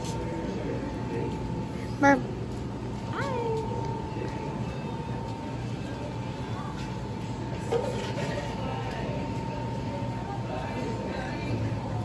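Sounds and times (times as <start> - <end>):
bar room hum: 0.0 - 12.0.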